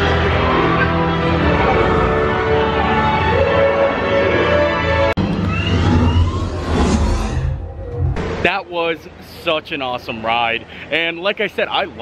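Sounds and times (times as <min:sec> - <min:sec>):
thin rising whistling tones: 0:05.2 - 0:08.2.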